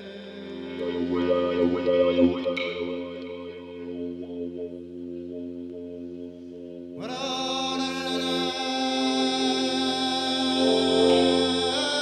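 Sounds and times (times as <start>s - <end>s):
mouthbow drone note: 0.0s - 12.0s.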